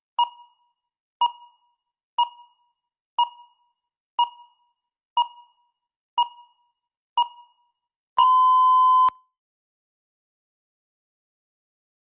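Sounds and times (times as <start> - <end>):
long electronic beep: 8.2 - 9.1.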